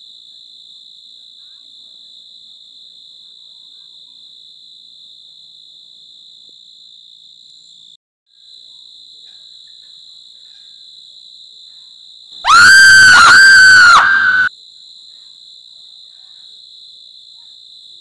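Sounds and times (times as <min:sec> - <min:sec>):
loud piercing shriek: 0:12.5 - 0:14.5.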